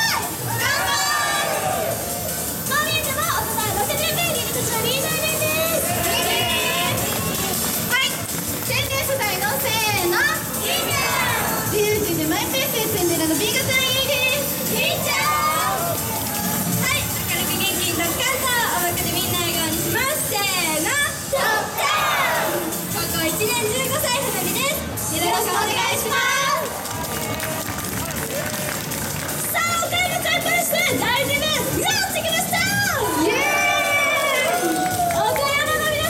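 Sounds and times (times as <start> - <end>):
girls talking through microphones: 2.5 - 27.0, 29.3 - 36.0.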